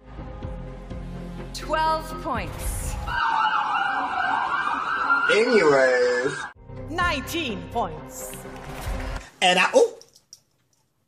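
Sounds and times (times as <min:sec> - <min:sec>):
harsh siren-like wail: 0:03.1 - 0:06.6.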